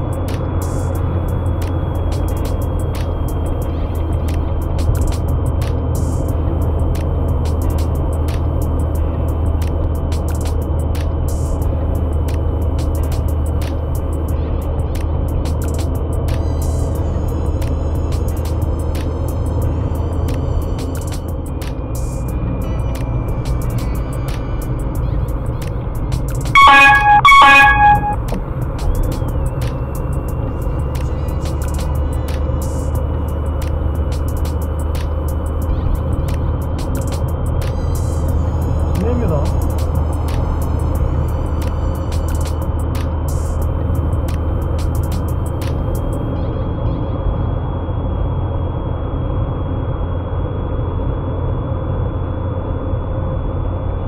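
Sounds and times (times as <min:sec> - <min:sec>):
car engine and road noise: 0:00.0 - 0:54.0
car horn blaring: 0:26.6 - 0:28.3.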